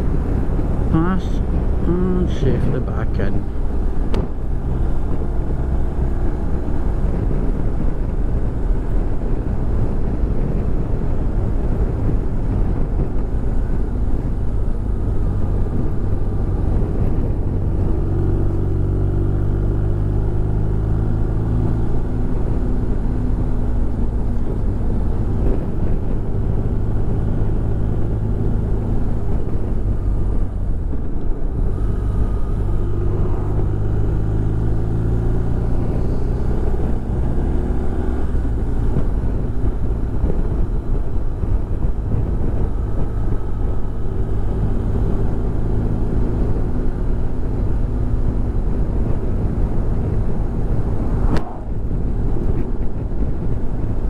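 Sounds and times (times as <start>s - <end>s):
wind and road noise: 0.0s - 54.0s.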